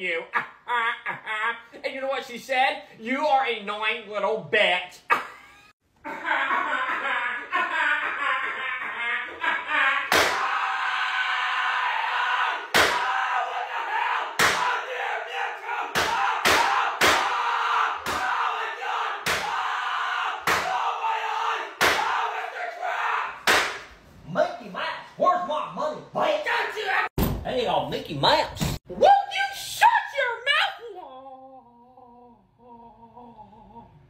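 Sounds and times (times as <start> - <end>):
person screaming: 10.0 - 23.4.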